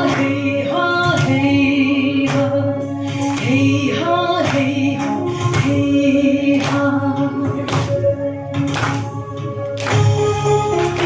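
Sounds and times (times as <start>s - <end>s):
woman singing: 0.0s - 8.0s.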